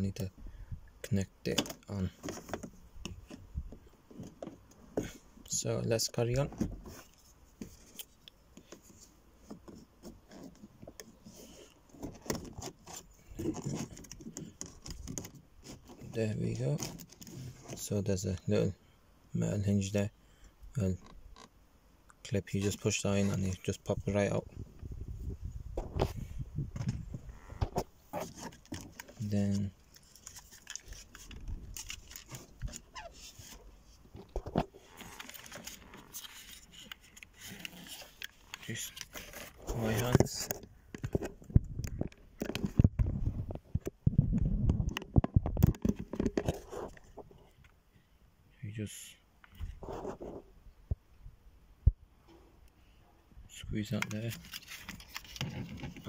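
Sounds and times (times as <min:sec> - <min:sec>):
plastic tool scraping panel: 0:08.6 - 0:17.9, 0:25.8 - 0:29.2, 0:54.6 - 0:56.0
plastic clicks and rattles: 0:40.0 - 0:44.0, 0:44.8 - 0:47.0.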